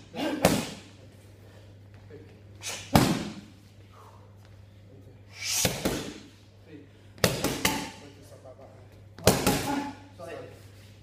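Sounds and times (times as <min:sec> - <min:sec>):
boxing gloves striking focus mitts: 0:02.7 - 0:03.4, 0:07.2 - 0:08.0.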